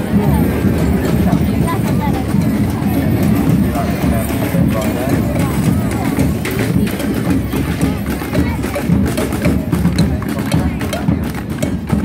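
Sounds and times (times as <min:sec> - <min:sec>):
marching drums: 0:00.0 - 0:12.0
street crowd chatter: 0:00.0 - 0:12.0.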